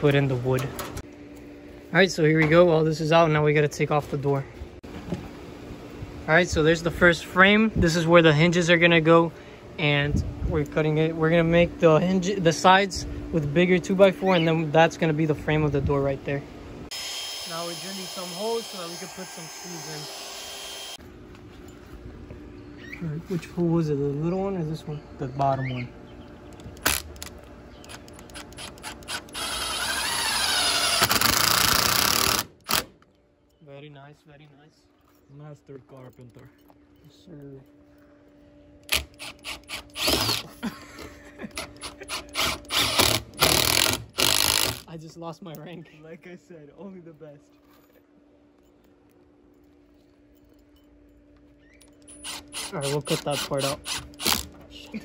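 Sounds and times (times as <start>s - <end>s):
faint steady hum: 0.0s - 19.0s
drill motor under load: 16.9s - 21.0s, 27.9s - 32.9s, 38.9s - 40.5s, 41.6s - 44.8s, 52.1s - 54.5s.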